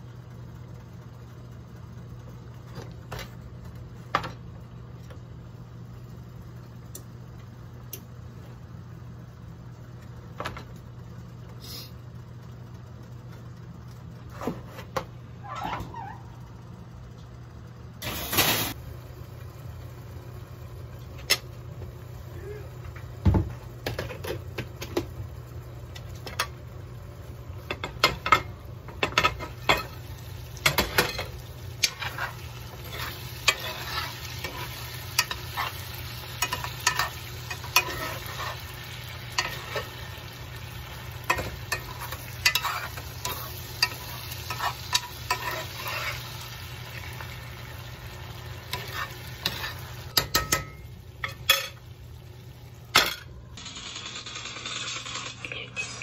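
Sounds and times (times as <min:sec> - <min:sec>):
vegetables sizzling in a skillet: 0:18.0 - 0:20.9, 0:26.7 - 0:52.8
spoon stirring and scraping: 0:31.8 - 0:40.0, 0:41.3 - 0:46.3, 0:48.7 - 0:50.6.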